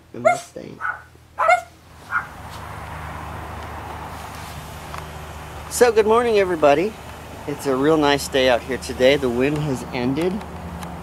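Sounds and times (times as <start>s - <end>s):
outdoor background noise: 0.0s - 11.0s
dog yipping: 0.2s - 2.4s.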